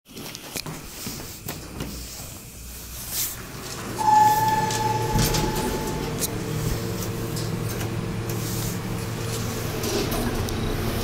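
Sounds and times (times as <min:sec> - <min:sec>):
low rumble of elevator doors: 0:03.4 - 0:11.0
elevator electronic tone: 0:03.9 - 0:08.2.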